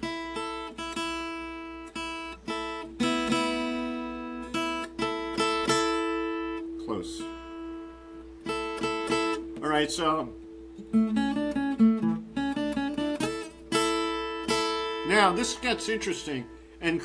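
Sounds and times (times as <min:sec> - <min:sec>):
acoustic guitar melody: 0:00.0 - 0:17.0.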